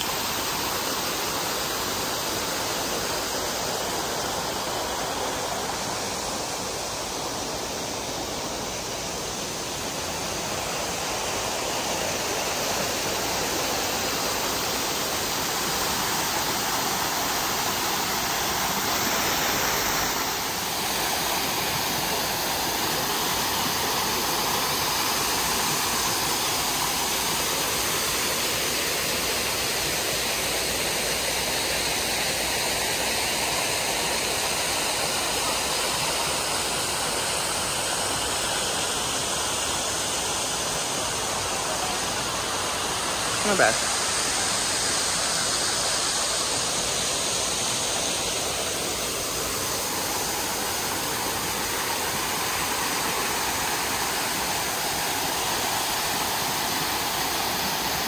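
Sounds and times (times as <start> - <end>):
waterfall pouring into a pool: 0.0 - 58.0.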